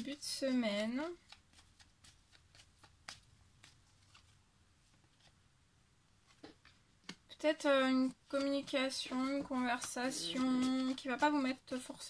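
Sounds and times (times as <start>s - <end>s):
woman speaking: 0.0s - 1.2s, 7.3s - 12.0s.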